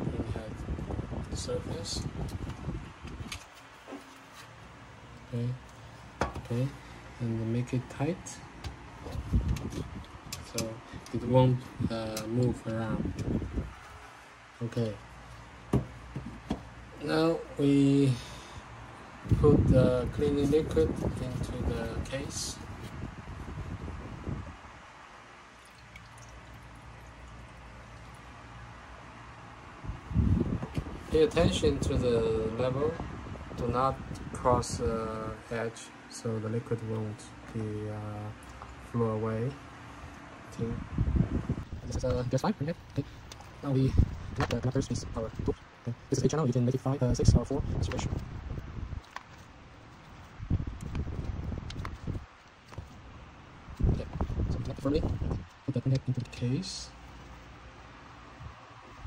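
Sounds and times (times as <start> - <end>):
low steady hum: 0.0 - 59.0
soft rustle of handling: 2.4 - 6.8
liquid trickling into metal tray: 25.6 - 28.2.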